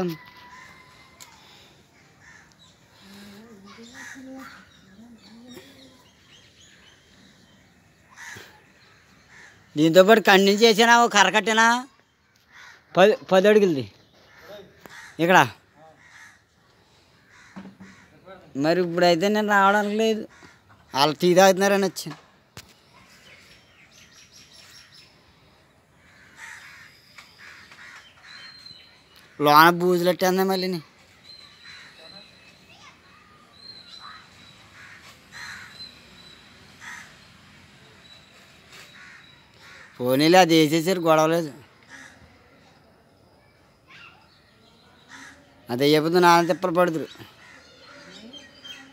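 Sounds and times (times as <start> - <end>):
crows cawing: 0.0 - 4.9, 8.0 - 9.9, 12.2 - 13.0, 14.2 - 18.5, 20.2 - 21.1, 25.9 - 28.6, 31.6 - 32.3, 33.9 - 37.4, 38.8 - 40.3, 41.7 - 42.5, 45.0 - 45.6, 46.2 - 48.8.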